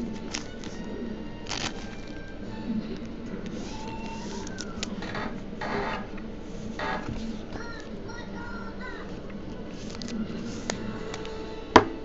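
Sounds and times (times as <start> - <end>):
trading card swishing: 3.0 - 5.0.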